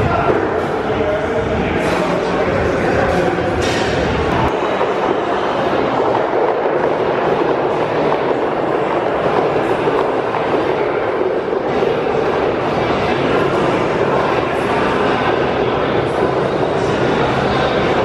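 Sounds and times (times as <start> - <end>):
battle ropes slapping floor: 3.6 - 18.0.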